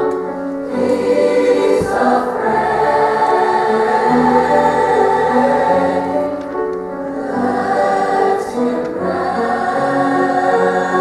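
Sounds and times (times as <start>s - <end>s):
choir singing in harmony: 0.0s - 11.0s.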